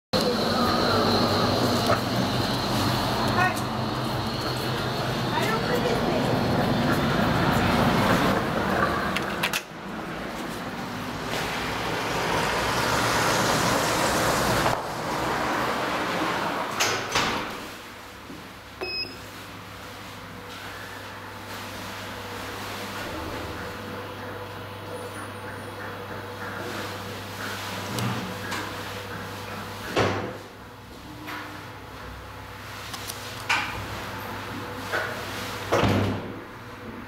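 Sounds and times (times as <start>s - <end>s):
vehicle engine running low: 0.2s - 16.8s
city street traffic: 0.2s - 37.0s.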